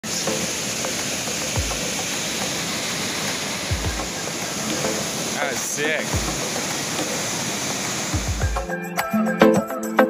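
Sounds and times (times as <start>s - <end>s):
waterfall rushing: 0.0s - 8.7s.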